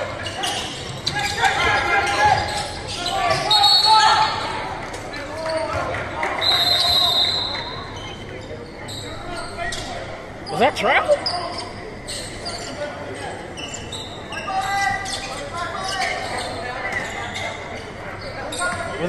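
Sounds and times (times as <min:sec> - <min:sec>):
sneaker squeaks: 0:00.0 - 0:04.6, 0:05.4 - 0:19.0.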